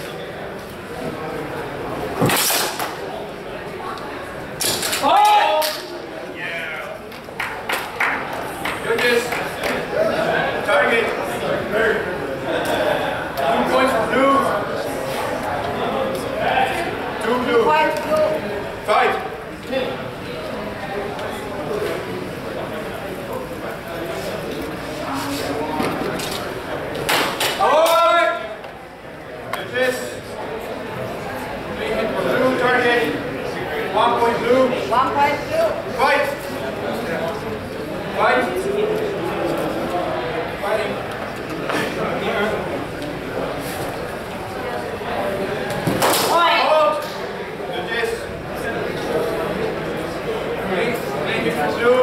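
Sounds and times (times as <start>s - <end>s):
murmuring voices: 0.0s - 52.0s.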